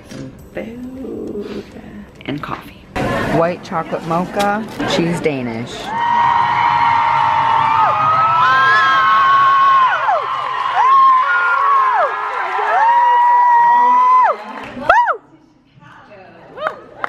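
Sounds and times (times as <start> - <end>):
audience screaming and cheering: 5.8 - 15.2.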